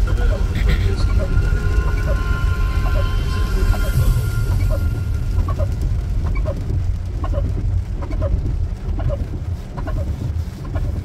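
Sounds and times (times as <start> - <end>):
car interior low rumble: 0.0 - 11.0
heavy rain: 0.0 - 11.0.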